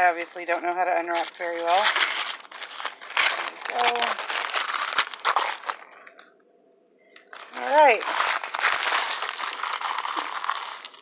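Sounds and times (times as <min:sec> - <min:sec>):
paper tearing and crumpling: 0:00.2 - 0:06.0, 0:07.3 - 0:11.0.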